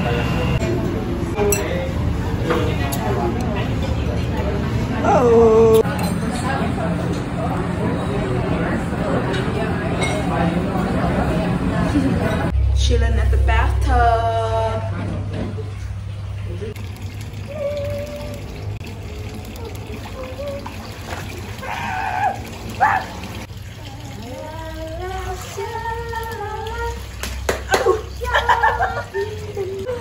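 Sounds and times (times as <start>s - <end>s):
water splashing in pool: 16.6s - 30.0s.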